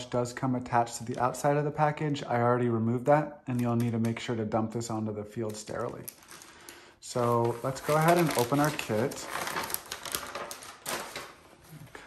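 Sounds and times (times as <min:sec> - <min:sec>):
wrap rustling and crinkling: 0:05.5 - 0:12.0.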